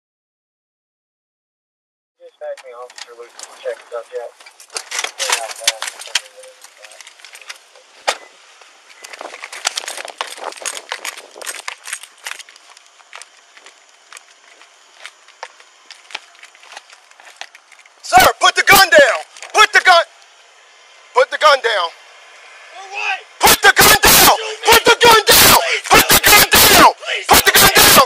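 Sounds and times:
muffled voices: 0:02.2 - 0:07.1, 0:22.8 - 0:28.0.

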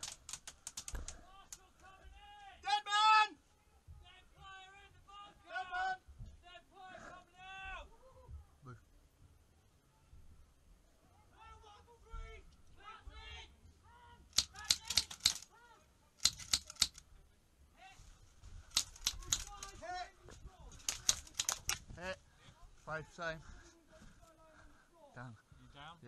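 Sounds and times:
voices calling: 0:12.8 - 0:17.0, 0:18.7 - 0:26.0
airsoft gun bursts: 0:14.3 - 0:15.5, 0:16.2 - 0:17.0, 0:18.7 - 0:19.8, 0:20.8 - 0:21.8.

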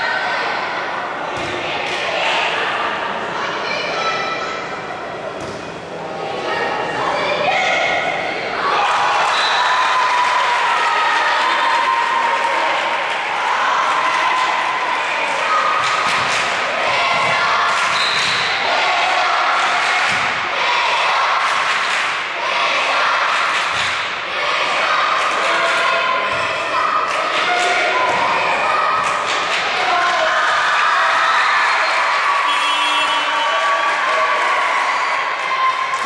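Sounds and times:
shouting and chatter: 0:00.0 - 0:36.0
volleyball strikes and thuds: 0:20.0 - 0:20.4.

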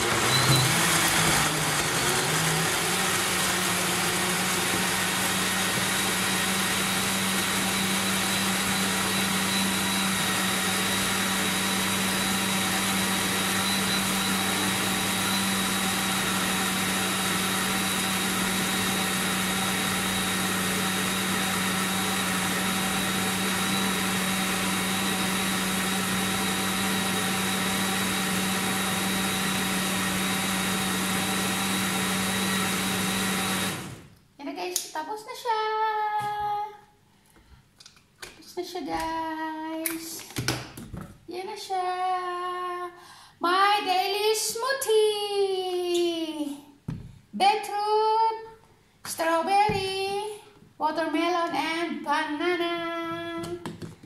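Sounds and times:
blender motor whirring: 0:00.0 - 0:34.1.

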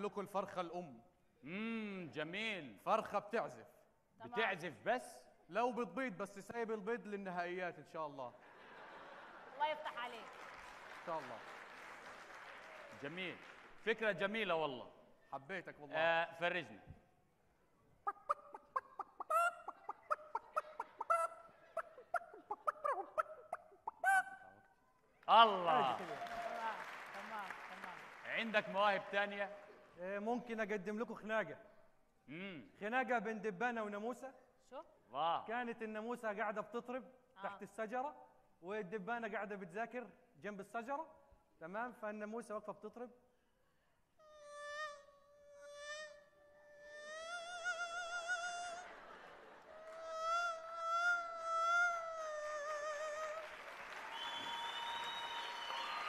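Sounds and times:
man imitating hen clucking: 0:18.1 - 0:24.5, 0:44.2 - 0:48.8, 0:49.9 - 0:53.4.

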